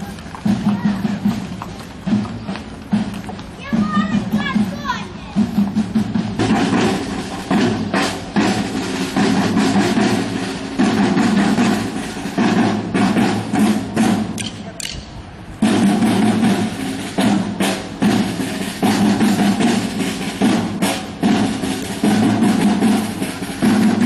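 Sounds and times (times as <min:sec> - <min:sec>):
snare and bass drums marching: 0:00.0 - 0:24.0.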